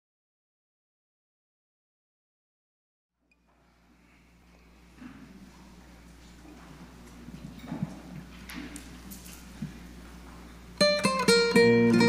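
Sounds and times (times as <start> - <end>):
footsteps on carpeted stage: 3.4 - 10.8.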